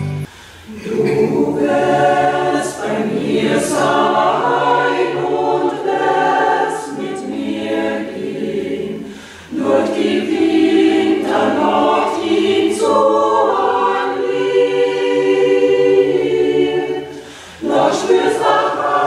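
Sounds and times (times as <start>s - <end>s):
mixed choir singing unaccompanied: 0.7s - 19.0s.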